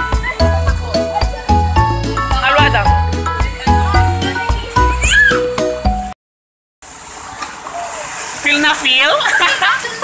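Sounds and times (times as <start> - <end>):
plucked music with bass line: 0.0 - 6.1
rushing water: 0.0 - 6.1, 6.8 - 10.0.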